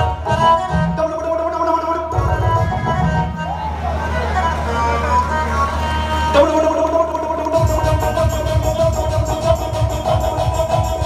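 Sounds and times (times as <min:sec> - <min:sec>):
drum and bass rumble: 0:00.0 - 0:11.0
keyboard chords: 0:00.0 - 0:11.0.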